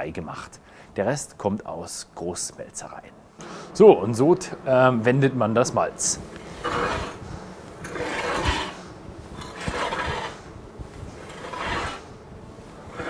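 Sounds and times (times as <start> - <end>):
metal rake rasping through grain: 6.0 - 7.2, 7.8 - 10.4, 11.0 - 13.0.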